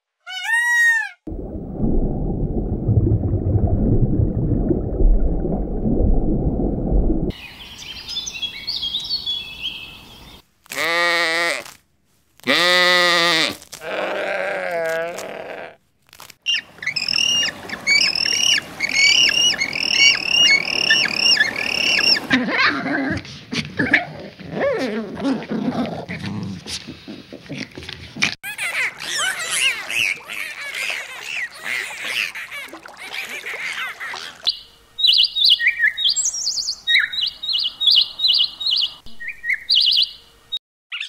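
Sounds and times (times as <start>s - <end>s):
low rumbling noise: 1.3s - 7.4s
high twittering: 16.5s - 22.3s
long quavering animal calls: 16.5s - 22.4s.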